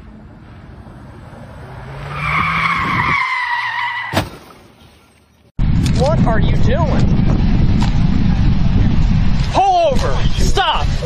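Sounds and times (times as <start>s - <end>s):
tyres squealing on asphalt: 1.4s - 4.2s.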